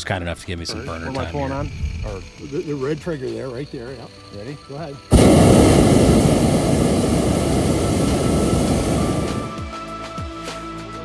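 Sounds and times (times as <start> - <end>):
propane burner flame rushing: 5.1 - 9.7.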